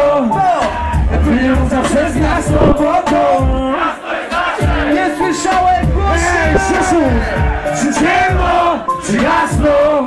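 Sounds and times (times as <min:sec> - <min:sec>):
hip-hop music over pa: 0:00.0 - 0:10.0
crowd shouting along: 0:03.7 - 0:10.0.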